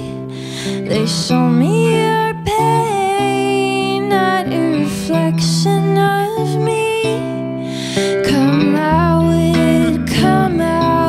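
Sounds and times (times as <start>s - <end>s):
electric guitar accompaniment: 0.0s - 11.0s
woman singing slow song: 0.0s - 11.0s.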